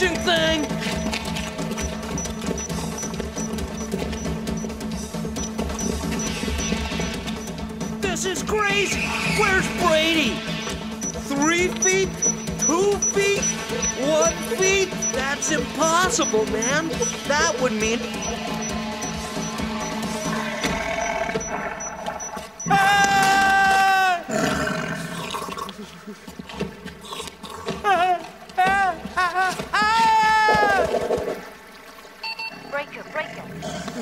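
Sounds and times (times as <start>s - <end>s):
cartoon background music: 0.0s - 23.4s.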